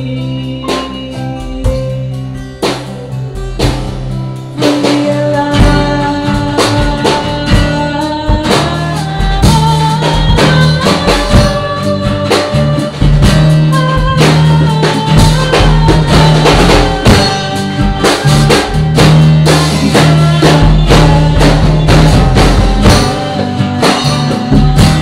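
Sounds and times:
acoustic guitar: 0.0s - 25.0s
congas: 0.0s - 25.0s
drum kit: 0.0s - 25.0s
electric bass: 0.0s - 25.0s
keyboard: 0.0s - 25.0s.

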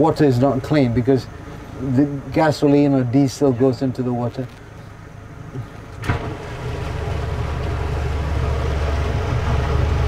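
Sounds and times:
motorboat engine droning: 0.0s - 10.0s.

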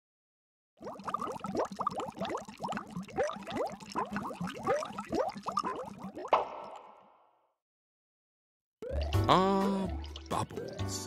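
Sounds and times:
cartoon bubbling plops: 0.8s - 7.0s, 8.8s - 10.9s.

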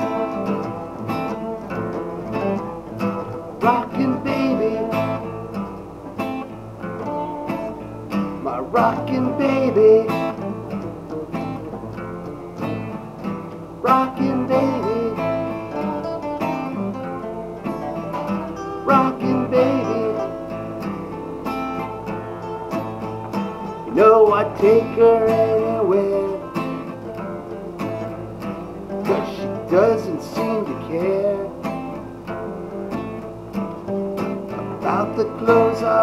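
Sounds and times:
person singing: 0.0s - 1.0s, 3.5s - 5.6s, 7.1s - 10.7s, 13.8s - 16.3s, 17.4s - 26.8s, 28.9s - 31.6s, 34.8s - 36.0s
strummed acoustic guitar: 0.0s - 36.0s.

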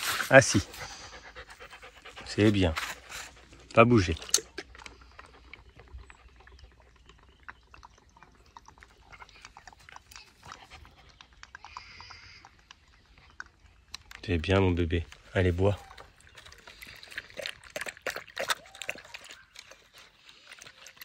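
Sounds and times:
puppy panting: 0.0s - 7.4s, 8.6s - 12.4s.

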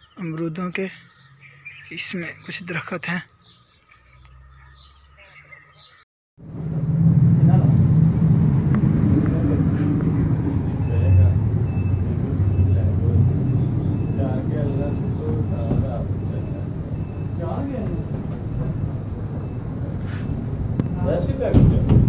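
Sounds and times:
loud low rumble: 6.4s - 21.9s.

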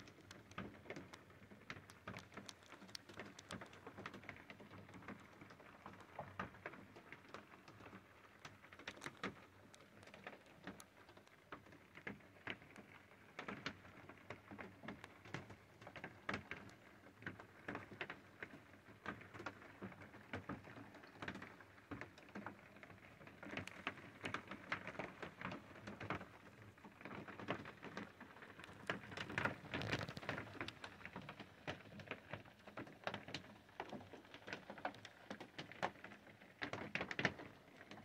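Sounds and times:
light ticking and tapping: 0.0s - 38.0s.

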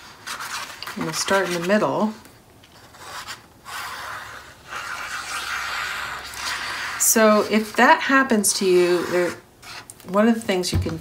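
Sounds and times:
glue bottle tip scratching paper: 2.8s - 7.8s, 8.6s - 9.9s.

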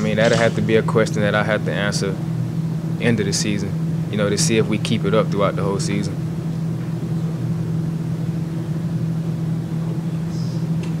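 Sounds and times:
steady low room hum: 0.0s - 11.0s.

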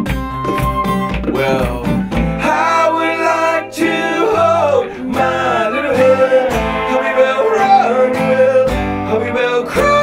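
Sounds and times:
bass notes: 0.0s - 10.0s
strummed acoustic guitar: 0.0s - 10.0s
people singing: 1.4s - 10.0s.

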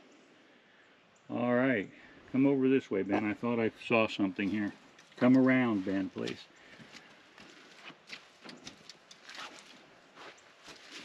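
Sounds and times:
faint footsteps on grass: 2.3s - 11.0s
rustling: 4.4s - 11.0s.

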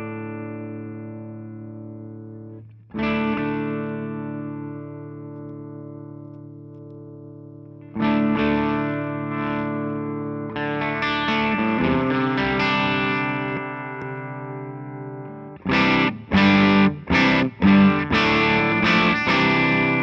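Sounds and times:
overdriven electric guitar chords: 0.0s - 20.0s.

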